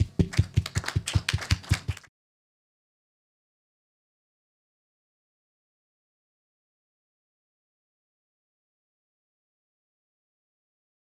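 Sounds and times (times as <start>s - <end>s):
audience applause: 0.0s - 2.1s.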